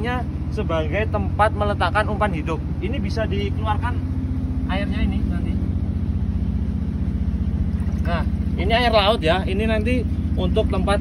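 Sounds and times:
boat engine idling: 0.0s - 11.0s.

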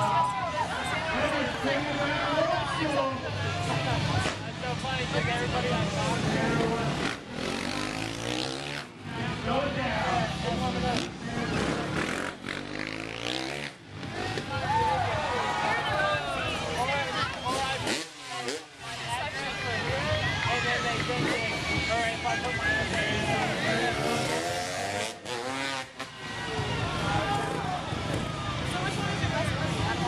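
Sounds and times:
dirt bike engine revving: 5.7s - 9.0s, 10.2s - 14.6s, 17.1s - 19.9s, 20.9s - 26.1s.

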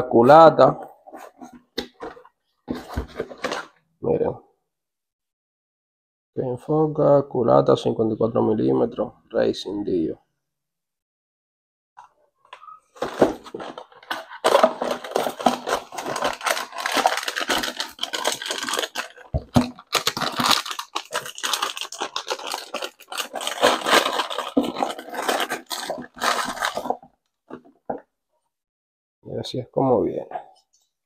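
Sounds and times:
packaging rustling and tearing: 13.0s - 27.7s.

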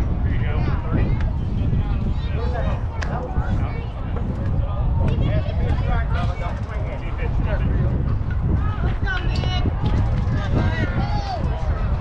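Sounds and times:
distant voices: 0.0s - 12.0s
wind rumbling on microphone: 0.0s - 12.0s.

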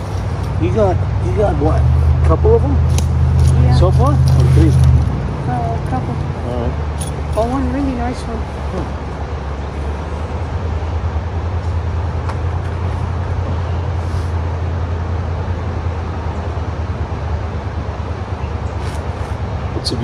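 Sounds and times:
outdoor background hiss: 0.0s - 20.0s
steady low rumble: 0.0s - 20.0s.

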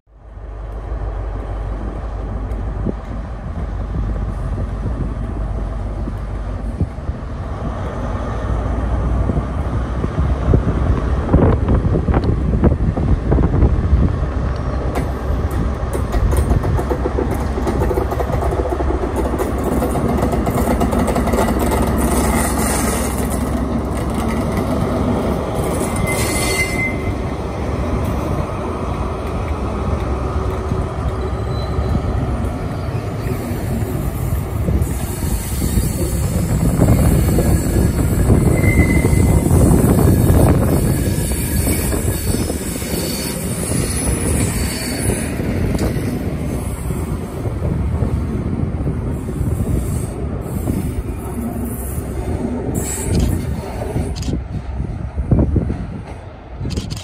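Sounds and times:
train engine and wheels rumbling: 0.0s - 57.0s
high wheel squeals: 25.6s - 27.3s, 30.9s - 45.6s.

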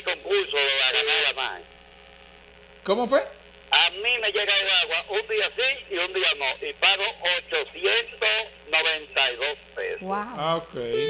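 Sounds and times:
voice over telephone line: 0.0s - 1.6s, 3.7s - 11.0s.

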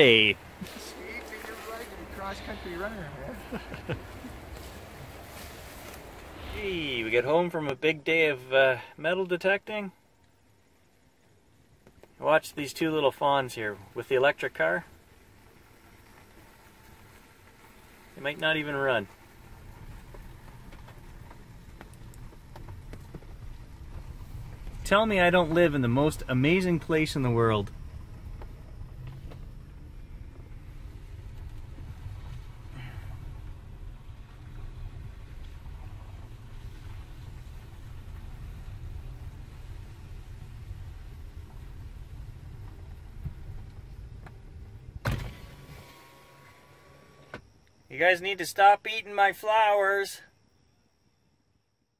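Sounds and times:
low rumble: 0.0s - 8.5s, 19.0s - 45.6s
raindrops ticking on car roof: 14.9s - 44.6s
car window motor thump: 45.0s - 47.4s
electric car window whine: 45.0s - 47.4s.

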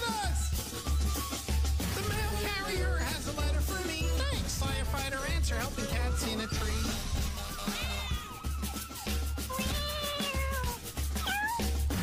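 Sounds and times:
upbeat music with bass beat: 0.0s - 12.0s
cat meowing: 7.5s - 11.8s.

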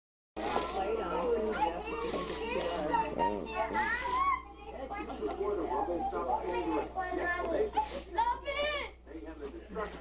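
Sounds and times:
children chattering: 0.4s - 9.1s.

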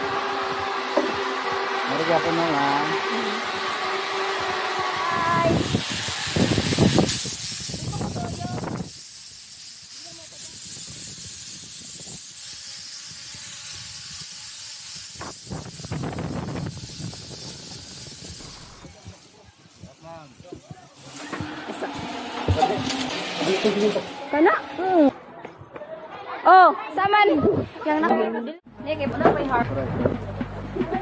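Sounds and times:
zip-line trolley running on cable: 0.0s - 25.1s
wind rushing over microphone: 5.0s - 9.0s, 15.1s - 22.8s.

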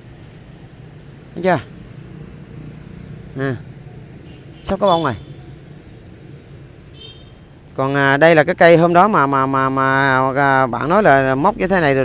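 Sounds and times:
vehicle engine rumble: 0.0s - 12.0s
person speaking: 0.7s - 7.0s, 7.6s - 12.0s.

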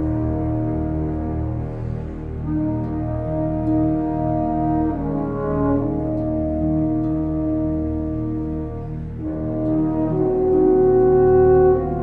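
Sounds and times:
orchestral held chords: 0.0s - 12.0s
steady low drone: 0.0s - 12.0s.

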